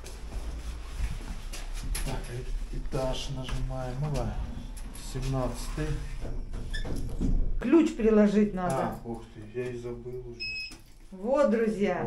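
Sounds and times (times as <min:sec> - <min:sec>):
footsteps: 0:00.0 - 0:07.6.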